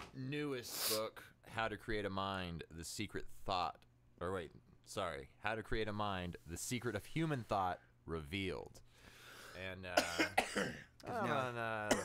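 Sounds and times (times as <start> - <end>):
man coughing: 10.0 - 11.0
man speaking: 11.0 - 12.0.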